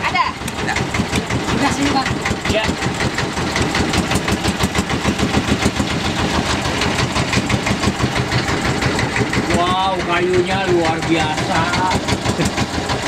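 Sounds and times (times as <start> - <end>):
boat engine chugging: 0.0 - 13.0.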